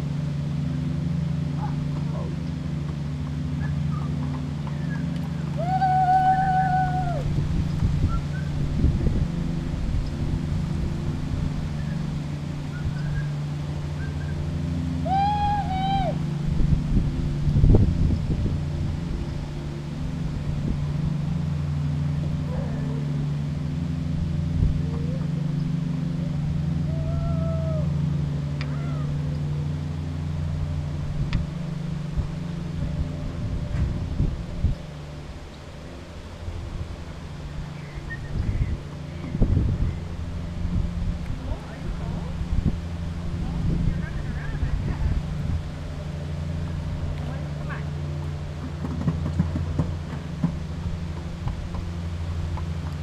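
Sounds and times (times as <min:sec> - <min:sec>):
low motor hum: 0:00.0 - 0:53.0
drawn-out high calls: 0:03.5 - 0:08.6, 0:11.7 - 0:16.4, 0:24.9 - 0:29.7.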